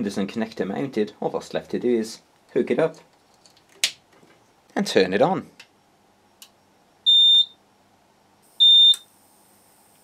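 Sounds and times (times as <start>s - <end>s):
short high-pitched beeps: 7.1s - 7.6s, 8.6s - 9.1s.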